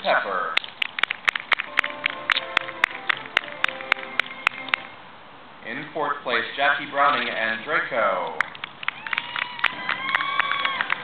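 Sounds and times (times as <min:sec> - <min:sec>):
person clapping: 0:00.6 - 0:04.9, 0:08.4 - 0:11.0.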